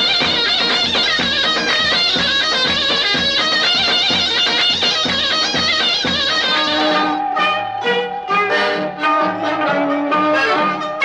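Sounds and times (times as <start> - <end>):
steady drum beat: 0.0 - 10.8
wavering reed melody: 0.0 - 11.0.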